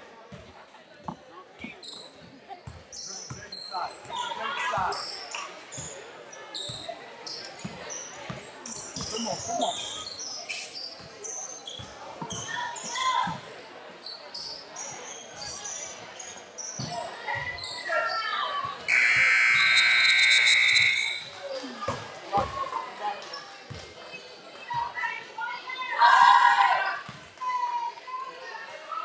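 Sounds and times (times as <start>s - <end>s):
voices in echoing hall: 0.0s - 29.0s
sneakers squeaking: 1.6s - 4.2s, 4.8s - 13.4s, 14.0s - 22.6s
loud steady tone: 18.9s - 21.2s.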